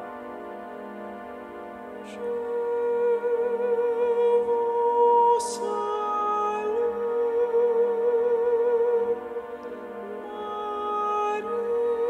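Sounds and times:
pipe organ chords: 0:00.0 - 0:12.0
woman singing long note with vibrato: 0:02.0 - 0:12.0.

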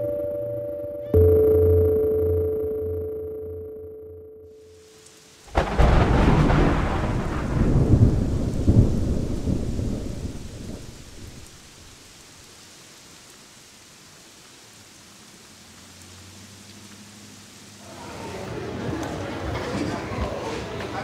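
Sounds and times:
steady rain falling: 0:04.6 - 0:20.9
thunder rumbling: 0:05.5 - 0:12.2.

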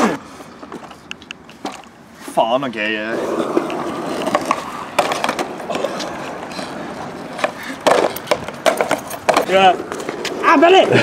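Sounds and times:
skateboard wheels rolling on concrete: 0:00.0 - 0:11.0
loud skateboard clack: 0:03.1 - 0:11.0
skateboard clicks and knocks: 0:03.1 - 0:11.0.

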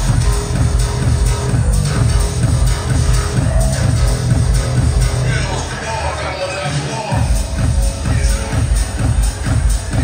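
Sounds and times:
kick drum: 0:00.0 - 0:05.0, 0:07.1 - 0:10.0
electronic dance music: 0:00.0 - 0:10.0.

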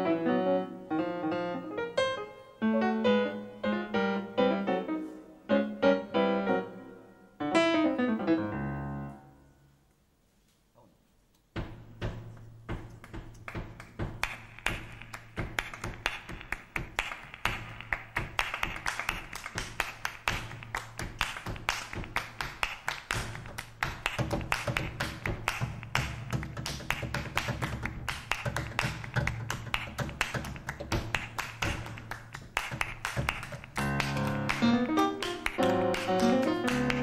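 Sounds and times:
hand-clapping rhythm: 0:11.4 - 0:37.0.

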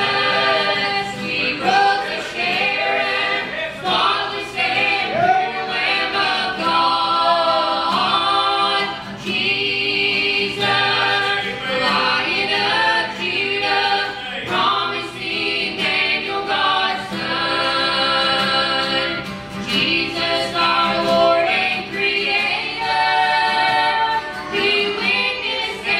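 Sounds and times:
people singing in harmony: 0:00.0 - 0:25.9
strummed acoustic guitar: 0:00.0 - 0:25.9.

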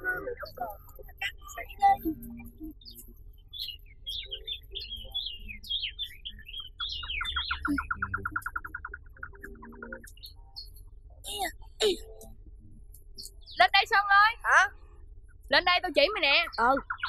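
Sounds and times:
bird trill: 0:00.0 - 0:10.9, 0:13.2 - 0:17.0
birds chirping: 0:00.0 - 0:17.0.

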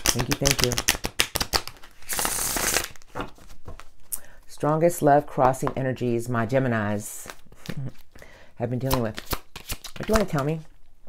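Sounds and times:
cards being riffle-shuffled: 0:00.0 - 0:04.0, 0:08.8 - 0:10.6.

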